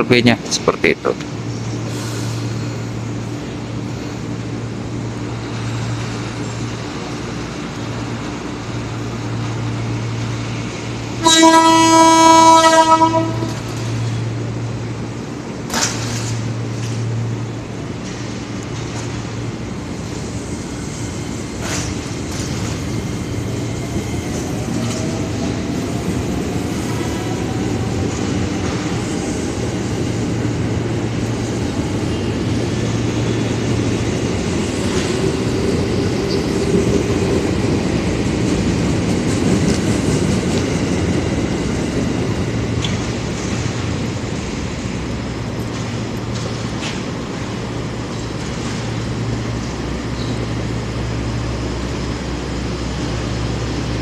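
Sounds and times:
train rumbling along rails: 0.0 - 54.0
train horn: 11.2 - 13.6.

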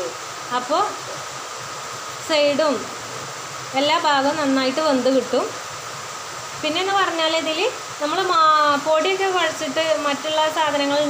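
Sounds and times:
woman speaking: 0.0 - 1.2, 2.2 - 3.0, 3.7 - 5.6, 6.6 - 11.0
food deep-frying in oil: 0.0 - 11.0.

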